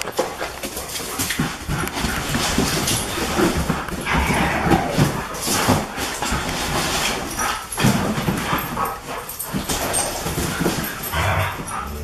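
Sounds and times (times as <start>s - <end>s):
dogs vocalizing: 0.0s - 12.0s.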